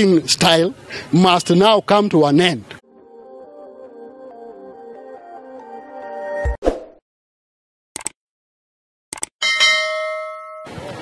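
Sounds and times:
quick clicks: 8.0 - 8.2, 9.1 - 9.3
notification bell ding: 9.4 - 10.8.

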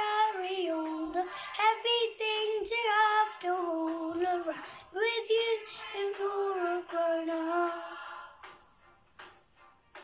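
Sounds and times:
boy singing: 0.0 - 8.0.

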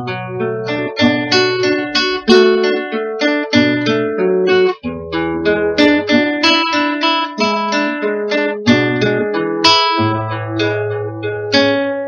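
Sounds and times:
classical guitar plucked: 0.0 - 12.0.

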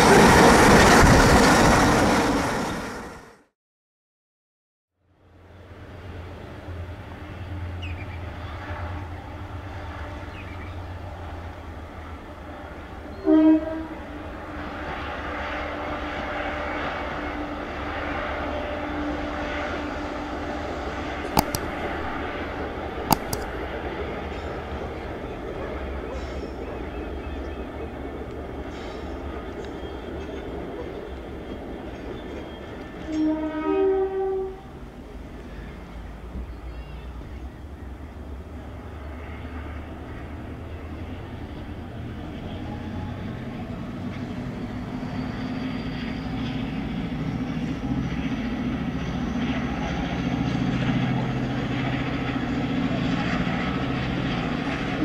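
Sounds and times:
diesel locomotive engines running: 5.2 - 55.0
train horn blasts: 8.4 - 10.7, 12.4 - 14.2, 33.0 - 34.8.

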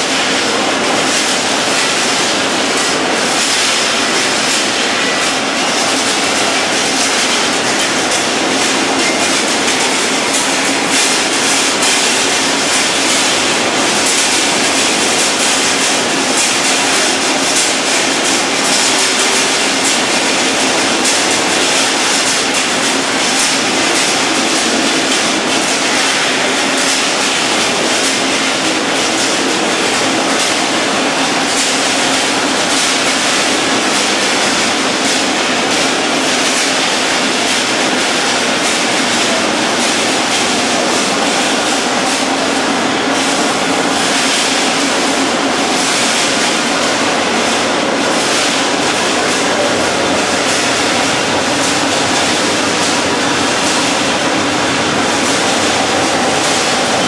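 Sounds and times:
industrial machinery clattering: 0.0 - 57.0.

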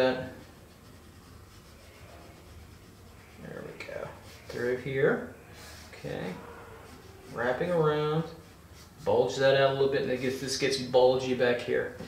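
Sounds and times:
pencil scratching on paper: 0.0 - 5.0, 5.6 - 9.3.

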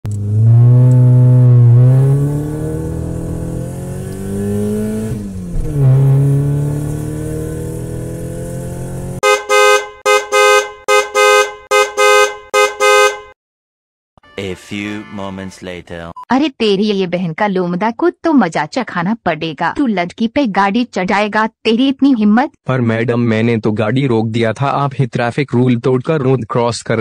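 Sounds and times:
car engine accelerating: 0.0 - 9.3
car horn honking: 9.2 - 13.4.

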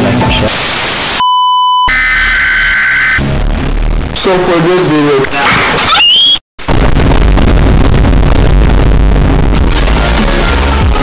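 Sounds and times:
distorted electronic warning beep: 1.2 - 3.3
harsh distorted noise with rumble: 3.1 - 5.2, 6.6 - 11.0.

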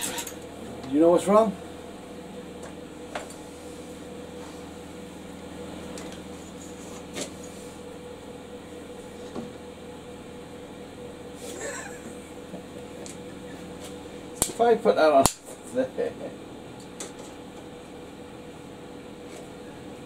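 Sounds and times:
electrical machine hum: 0.0 - 20.0.

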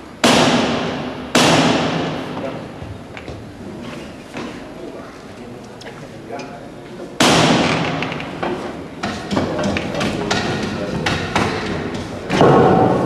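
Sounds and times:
heavy thud with echo: 0.2 - 3.0, 7.2 - 13.0.

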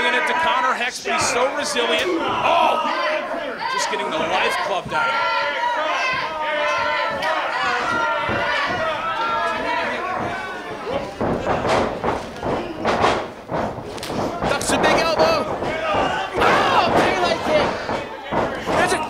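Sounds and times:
voices: 0.0 - 19.0
heavy thuds on wrestling mat: 6.1 - 19.0.

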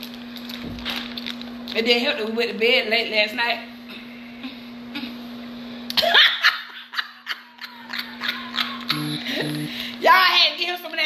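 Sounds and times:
woman laughing: 5.9 - 9.8.

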